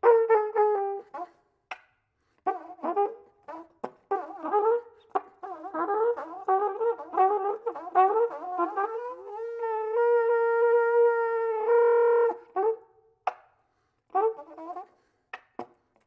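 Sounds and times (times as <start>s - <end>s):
solo flugelhorn playing: 5.5s - 12.8s.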